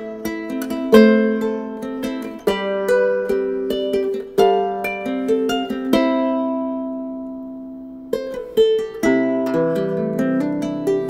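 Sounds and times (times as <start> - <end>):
ukulele played fingerstyle: 0.0 - 11.0.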